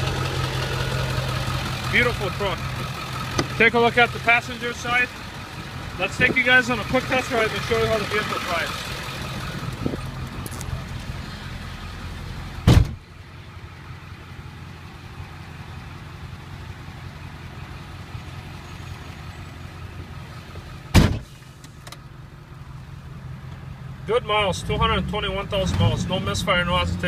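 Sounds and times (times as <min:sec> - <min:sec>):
diesel truck idling: 0:00.0 - 0:24.6
truck door slamming: 0:03.2 - 0:03.6, 0:12.6 - 0:13.0, 0:20.9 - 0:21.4.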